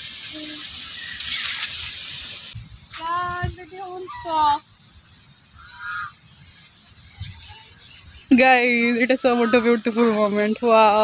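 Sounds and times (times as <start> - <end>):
faint bird call: 5.6 - 8.4.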